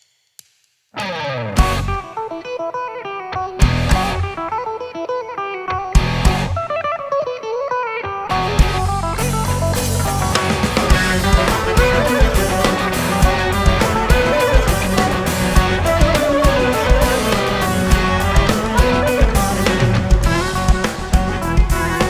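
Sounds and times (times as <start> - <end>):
guitar: 0.9 - 22.0
live band playing: 8.3 - 22.0
congas and percussion: 9.8 - 22.0.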